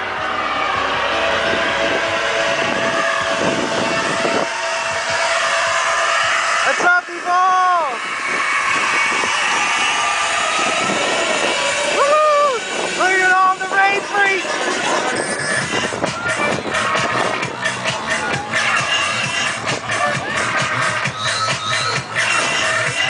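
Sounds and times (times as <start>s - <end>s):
crowd chatter: 0.0s - 23.0s
distant music over sound system: 0.0s - 23.0s.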